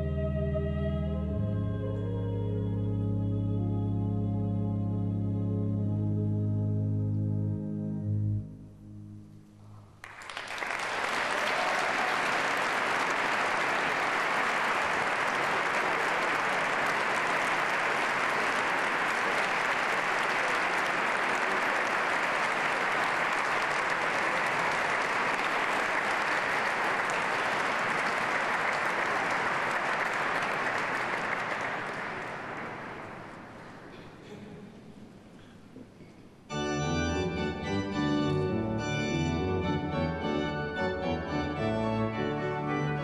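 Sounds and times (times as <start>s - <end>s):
audience applauding: 10.0s - 34.0s.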